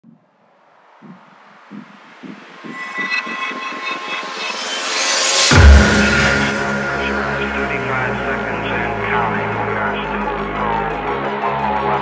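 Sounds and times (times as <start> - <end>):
soft low electronic pulses: 0.0 - 10.5
sustained high tones: 2.6 - 9.1.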